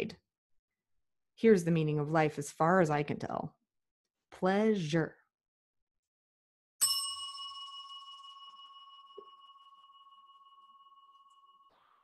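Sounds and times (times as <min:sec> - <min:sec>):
metal chime ringing: 0:06.8 - 0:12.0.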